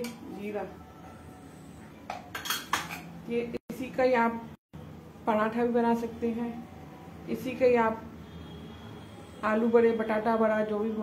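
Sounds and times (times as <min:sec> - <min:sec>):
kitchen utensils clinking: 0:02.1 - 0:03.2.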